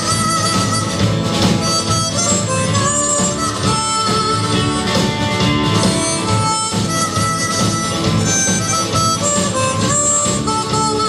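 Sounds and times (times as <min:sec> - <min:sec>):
electric bass: 0:00.0 - 0:11.0
electric guitar: 0:00.0 - 0:11.0
harmonica into a microphone: 0:00.0 - 0:11.0.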